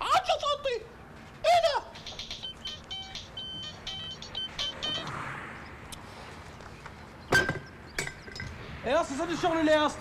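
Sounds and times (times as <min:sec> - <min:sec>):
phone ringtone beeping: 0:01.9 - 0:05.2.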